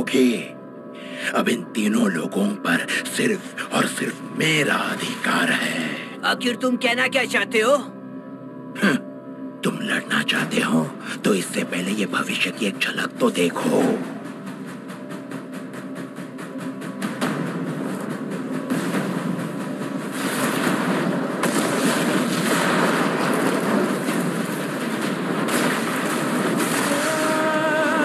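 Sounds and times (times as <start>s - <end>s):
fire and explosion noise: 16.8s - 28.0s.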